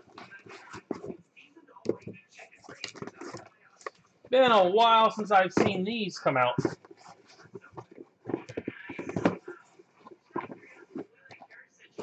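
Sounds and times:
cardboard boxes knocking and rustling: 5.6 - 5.9, 6.6 - 11.1.

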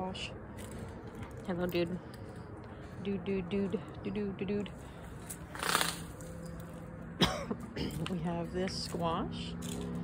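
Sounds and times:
person coughing: 7.2 - 8.1.

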